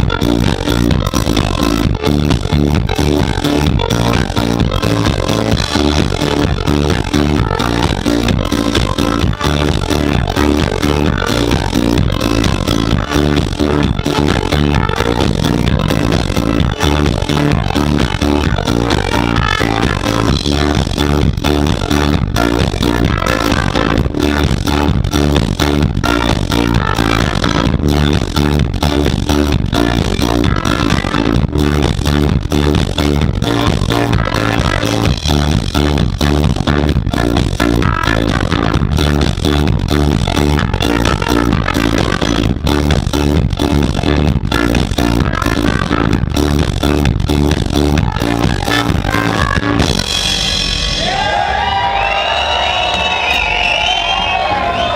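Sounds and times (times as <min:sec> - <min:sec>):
swing band playing: 0:00.0 - 0:53.6
drums steady beat: 0:00.0 - 0:54.9
trumpet: 0:05.5 - 0:25.2, 0:33.0 - 0:43.0.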